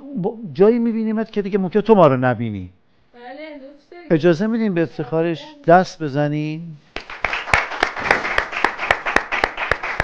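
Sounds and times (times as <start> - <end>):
sharp hand claps: 7.0 - 10.0
softer clapping: 7.0 - 10.0.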